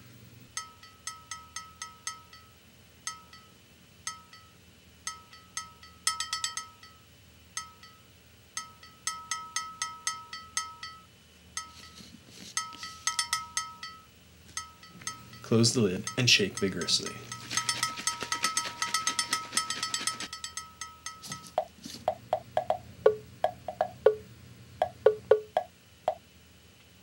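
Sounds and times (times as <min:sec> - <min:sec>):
spoon clinking on bottle rim: 0:14.9 - 0:21.6.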